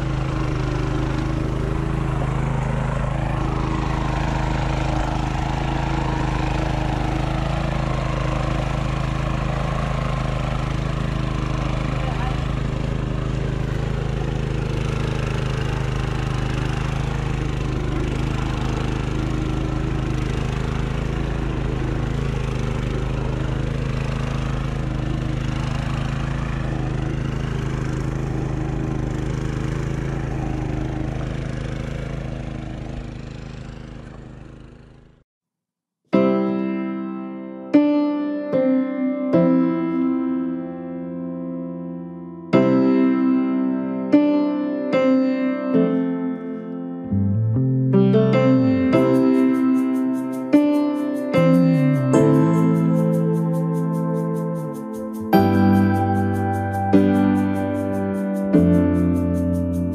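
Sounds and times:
power tiller engine running: 0:00.0 - 0:35.2, 0:45.7 - 0:59.9.

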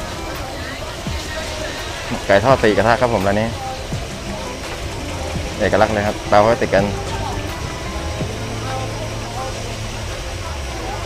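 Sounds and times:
indistinct voices: 0:00.0 - 0:11.0
low rumble and hiss: 0:00.0 - 0:11.0.

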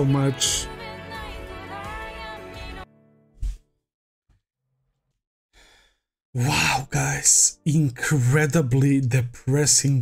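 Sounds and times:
person breathing out: 0:05.6 - 0:06.1.

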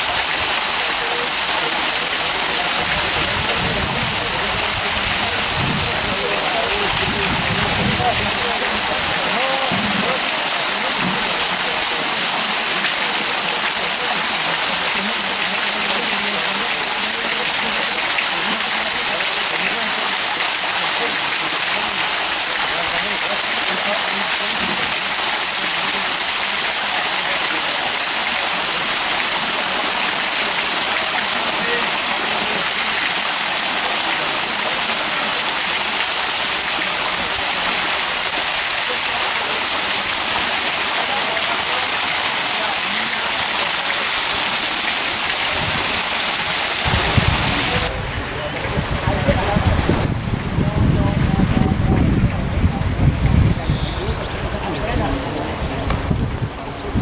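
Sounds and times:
fountain water splashing: 0:00.0 - 0:57.0.

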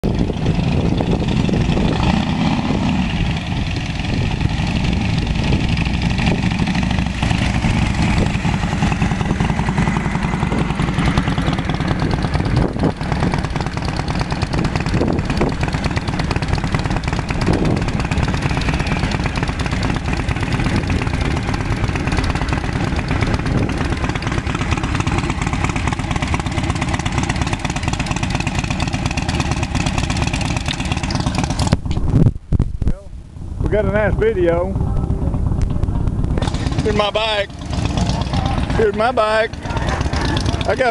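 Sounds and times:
motorcycles riding past: 0:00.2 - 0:31.7, 0:36.3 - 0:40.9.

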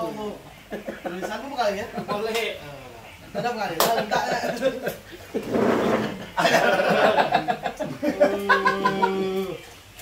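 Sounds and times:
men talking: 0:00.0 - 0:09.7.

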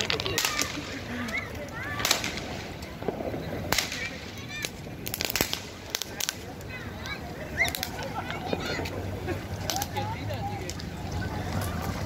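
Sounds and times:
firecrackers bursting: 0:00.0 - 0:12.0.

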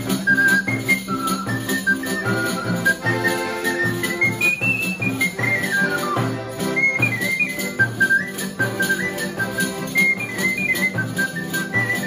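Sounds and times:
accordion chords: 0:00.0 - 0:12.0
acoustic guitar: 0:00.0 - 0:12.0
end-blown flute melody: 0:00.0 - 0:12.0
tambourine jingles: 0:00.0 - 0:12.0.

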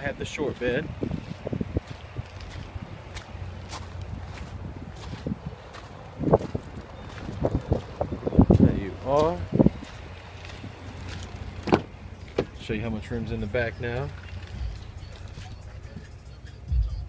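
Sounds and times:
wind rumble on microphone: 0:00.0 - 0:11.2
footsteps on gravel: 0:00.3 - 0:12.6, 0:13.9 - 0:16.1.

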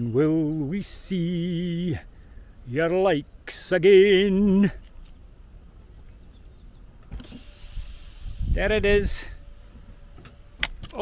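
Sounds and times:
power window motor running: 0:07.1 - 0:11.0.

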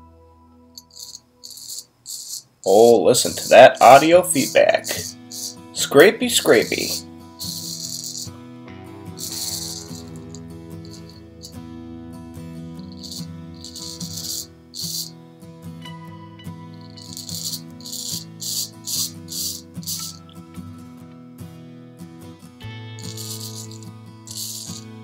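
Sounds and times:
background music: 0:00.0 - 0:25.0
razor scraping stubble: 0:00.8 - 0:08.4, 0:09.2 - 0:11.6, 0:12.8 - 0:15.1, 0:16.8 - 0:20.3, 0:23.0 - 0:25.0.

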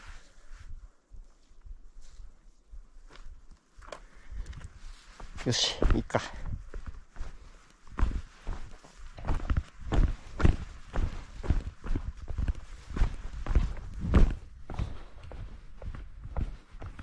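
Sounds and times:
footsteps on gravel trail: 0:02.0 - 0:17.0.

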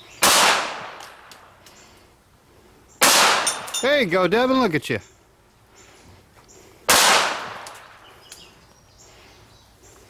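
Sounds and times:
pistol shot tail: 0:00.2 - 0:01.4, 0:03.0 - 0:03.7, 0:06.9 - 0:08.0.

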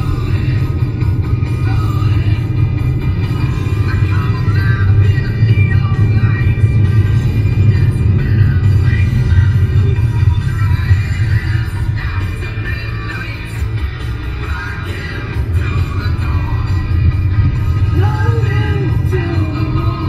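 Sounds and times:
car radio music: 0:00.0 - 0:20.0.

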